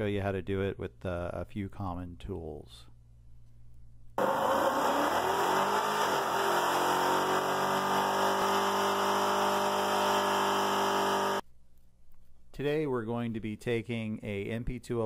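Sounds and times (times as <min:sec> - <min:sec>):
engine revving: 0:04.2 - 0:11.4
tire screeching: 0:04.2 - 0:11.4.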